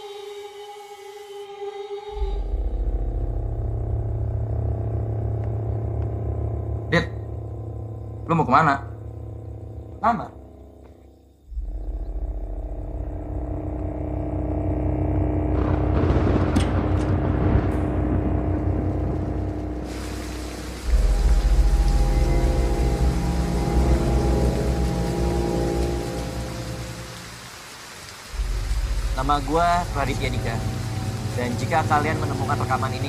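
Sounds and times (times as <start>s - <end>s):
film score low tones: 2.0s - 33.0s
deep low rumble: 2.2s - 8.2s, 11.5s - 27.0s, 28.3s - 33.0s
heavy rain: 12.9s - 33.0s
thunder cracks: 15.4s - 24.8s.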